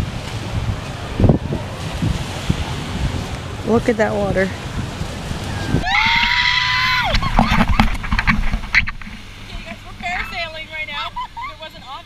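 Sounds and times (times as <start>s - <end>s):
wind buffeting microphone: 0.0s - 12.0s
woman screaming: 5.6s - 7.4s
squeals and laughs: 11.1s - 11.7s.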